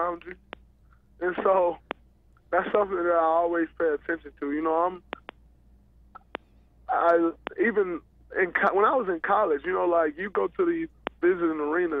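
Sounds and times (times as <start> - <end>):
short clicks: 5.1 - 5.4, 6.1 - 6.5.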